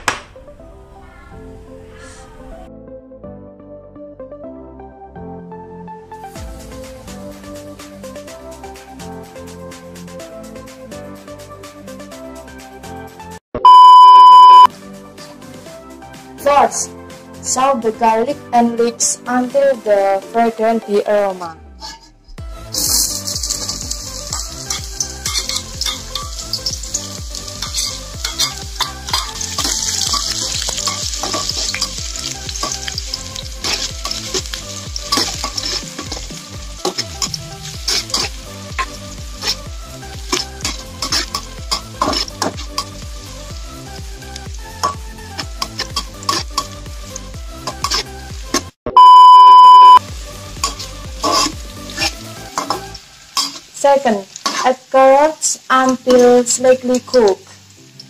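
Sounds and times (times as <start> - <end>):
loud steady beep: 13.6 - 14.7, 48.9 - 50.0
metal spatula scraping a pan: 21.7 - 43.0, 45.6 - 46.8, 47.6 - 48.7, 50.6 - 53.8, 54.4 - 54.8
vegetables sizzling in oil: 22.5 - 48.8, 50.0 - 58.0.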